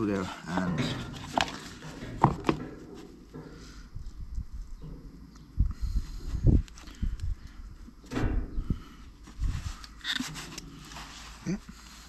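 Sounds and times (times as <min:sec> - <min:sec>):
hand handling noise: 0:00.0 - 0:05.6
dull low thumps: 0:03.2 - 0:09.6.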